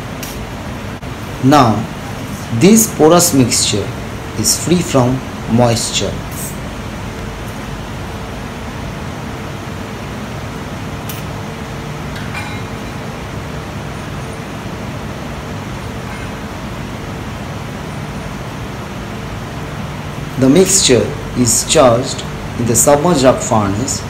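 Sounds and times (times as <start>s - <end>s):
industrial machinery rumble: 0.0s - 24.0s.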